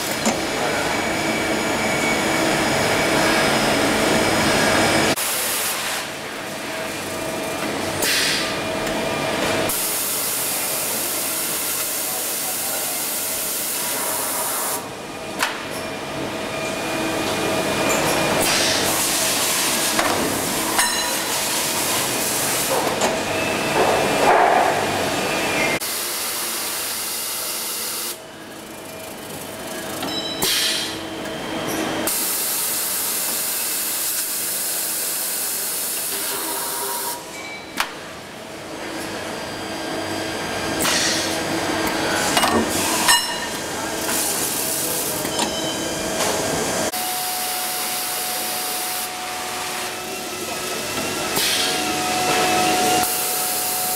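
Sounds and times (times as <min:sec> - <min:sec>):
machine hissing: 0:46.9 - 0:53.9.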